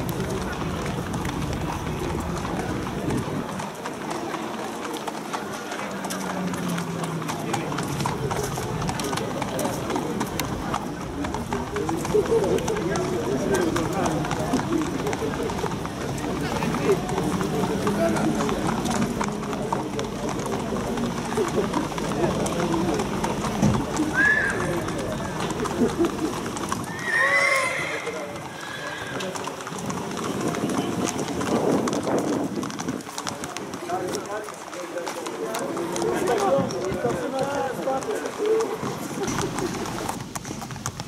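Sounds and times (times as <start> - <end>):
people talking indistinctly: 0.0 - 40.8
hooves clip-clopping on pavement: 0.0 - 41.0.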